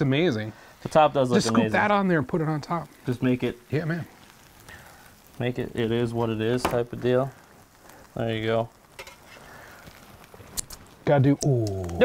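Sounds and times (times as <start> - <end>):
sandwiches sizzling on griddle: 0.0 - 12.0.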